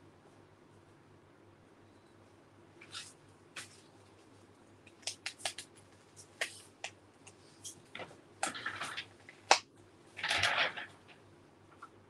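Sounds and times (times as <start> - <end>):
paper crinkling rustles: 10.2 - 11.2.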